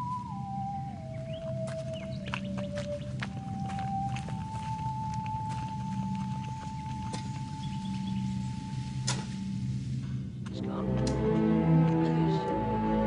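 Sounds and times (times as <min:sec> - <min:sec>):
low droning chord: 0:03.0 - 0:13.0
high sustained note: 0:03.3 - 0:13.0.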